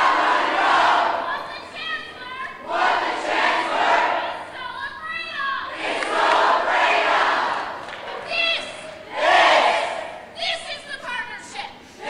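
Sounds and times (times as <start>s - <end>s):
crowd shouting in unison: 0.0s - 10.4s
woman shouting: 8.2s - 8.9s.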